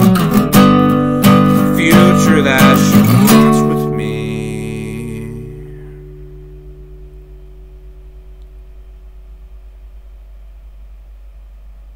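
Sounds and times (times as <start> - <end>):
strummed guitar chord ringing: 0.0 - 9.4
steady low hum: 0.0 - 11.9.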